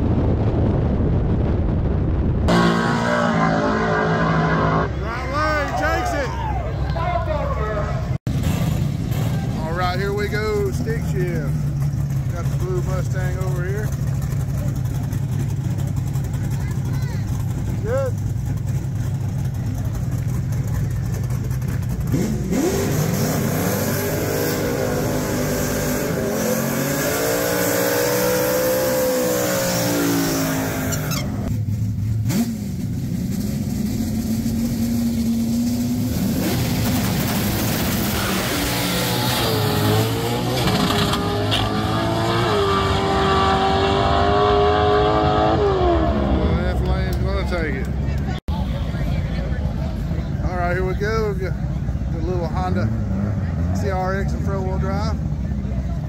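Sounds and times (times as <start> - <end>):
drag car engine revving: 2.5 - 6.0, 8.1 - 50.3.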